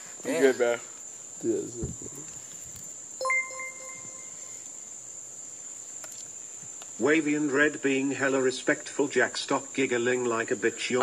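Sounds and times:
crickets chirping: 0:00.0 - 0:11.0
ringing electronic chime: 0:03.2 - 0:04.7.

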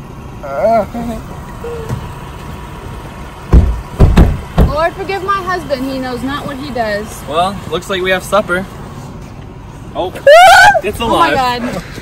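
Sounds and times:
car engine idling: 0:00.0 - 0:12.0
loud low thump: 0:03.5 - 0:04.8
person exclaiming: 0:10.2 - 0:11.0.

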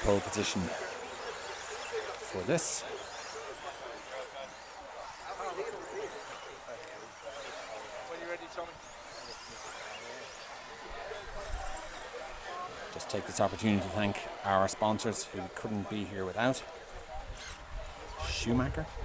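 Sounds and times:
distant indistinct voices: 0:00.0 - 0:19.0.

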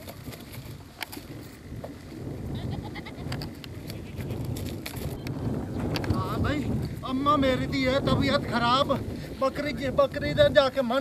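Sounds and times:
wind rumble on microphone: 0:00.0 - 0:11.0
goats bleating: 0:02.5 - 0:03.4.

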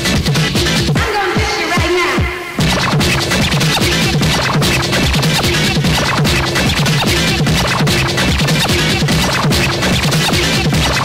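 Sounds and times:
fast electronic dance music: 0:00.0 - 0:11.0.

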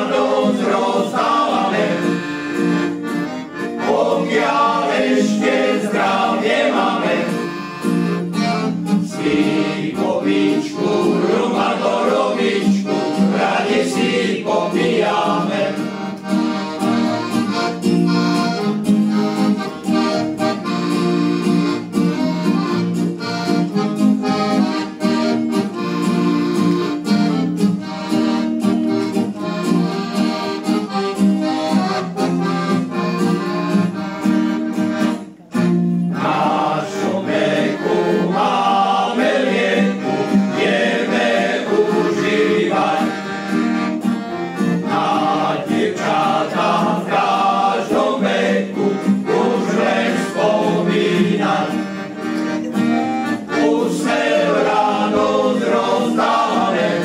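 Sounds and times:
male choir singing: 0:00.0 - 0:02.4, 0:03.8 - 0:07.6, 0:09.0 - 0:16.2, 0:36.1 - 0:43.5, 0:44.4 - 0:52.2, 0:53.4 - 0:57.0
acoustic guitar: 0:00.0 - 0:57.0
button accordion playing: 0:00.0 - 0:57.0.

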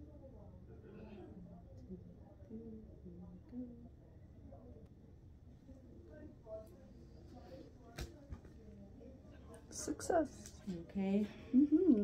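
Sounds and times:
faint distant talking: 0:00.0 - 0:12.0.

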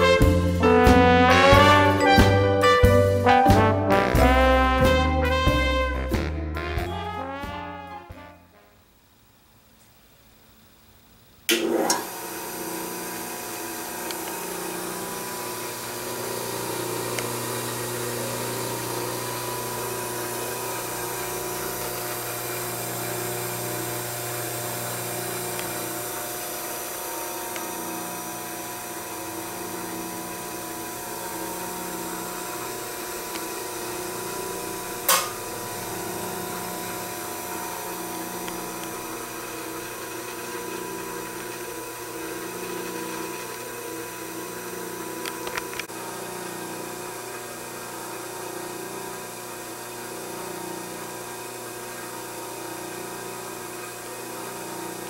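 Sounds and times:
grinder motor humming and whining: 0:11.6 - 0:55.0.

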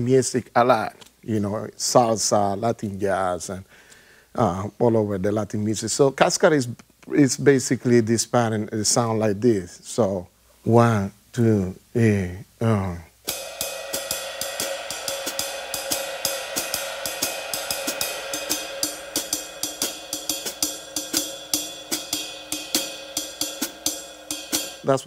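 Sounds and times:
drumstick striking cymbal: 0:13.2 - 0:25.0.

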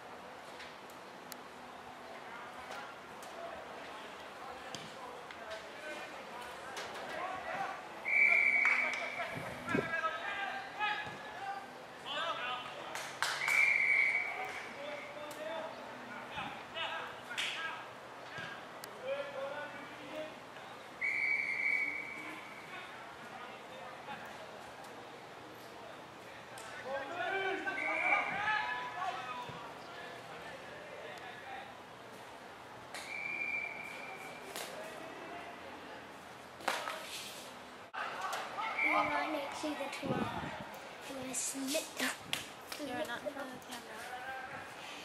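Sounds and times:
whistle blasts: 0:08.0 - 0:09.2, 0:13.4 - 0:14.4, 0:21.0 - 0:22.6, 0:27.6 - 0:28.4, 0:33.0 - 0:34.5, 0:38.6 - 0:39.1
players shouting: 0:26.8 - 0:29.5, 0:38.0 - 0:40.0.

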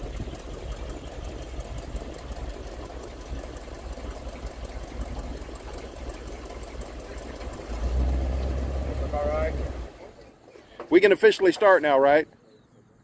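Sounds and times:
car engine rumbling past: 0:00.0 - 0:11.1.

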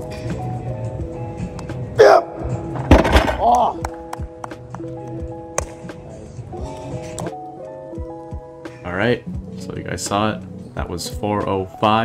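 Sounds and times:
background music: 0:00.0 - 0:12.0
barbell thud on turf: 0:02.8 - 0:03.6.

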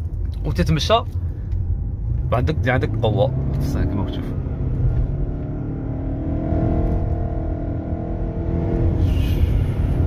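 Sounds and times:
low road rumble: 0:00.0 - 0:10.0
car engine accelerating: 0:01.5 - 0:10.0.

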